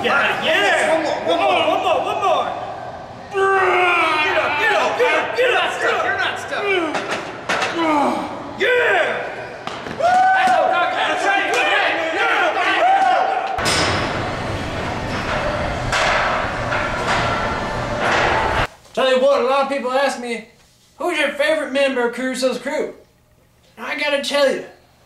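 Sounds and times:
men shouting and whooping: 0.0s - 9.4s, 10.0s - 13.6s
loud harsh noise: 13.6s - 18.7s.

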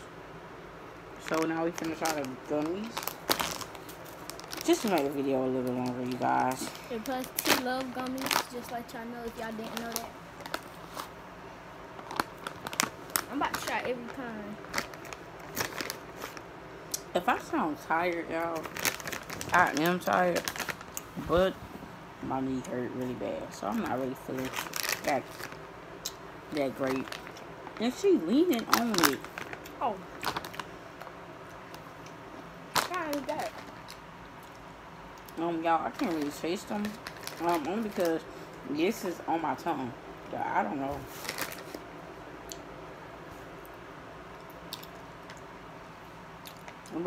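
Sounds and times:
plastic candy bag rustling: 1.2s - 11.2s, 12.0s - 16.4s, 17.4s - 21.6s, 23.5s - 25.6s, 26.5s - 30.8s, 32.7s - 34.0s, 35.7s - 38.2s, 40.7s - 41.8s.

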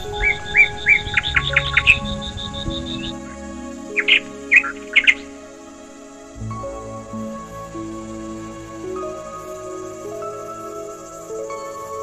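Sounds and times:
high bird chirps: 0.0s - 3.2s, 4.0s - 5.3s
calm instrumental music: 0.0s - 12.0s.

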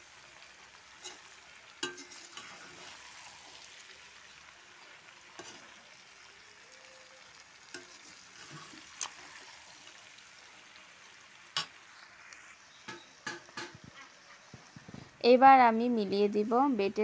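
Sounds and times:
food sizzling in oil: 0.0s - 17.0s
knocks against pan: 12.9s - 13.8s.

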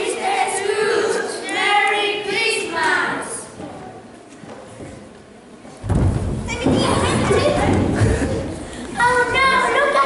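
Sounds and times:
people talking and calling out: 6.2s - 10.0s.

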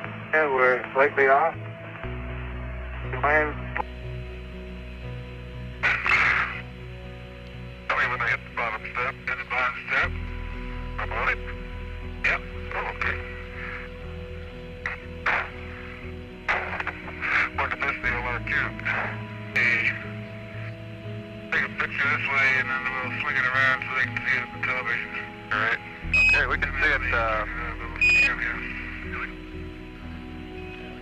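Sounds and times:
low music drone: 0.0s - 31.0s
steady hum: 0.0s - 31.0s
radio voice chatter: 0.4s - 1.5s, 3.1s - 3.9s, 5.8s - 6.7s, 7.9s - 10.2s, 11.0s - 11.6s, 12.2s - 13.9s, 14.8s - 20.7s, 21.5s - 29.4s.

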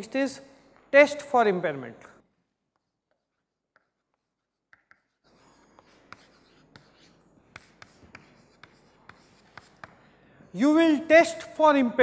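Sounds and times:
chalk scratching on blackboard: 2.7s - 10.1s
chalk tapping on board: 2.7s - 10.1s.

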